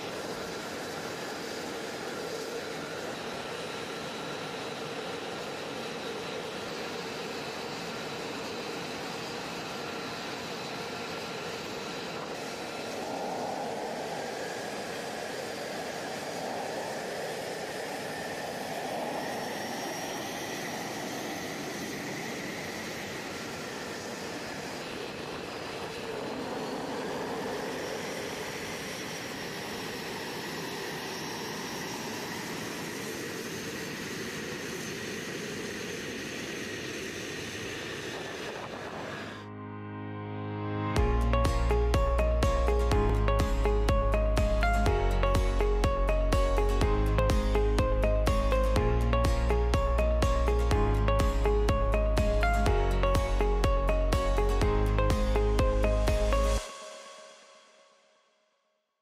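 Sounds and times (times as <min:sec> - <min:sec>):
jet engine idling: 0:00.0 - 0:39.4.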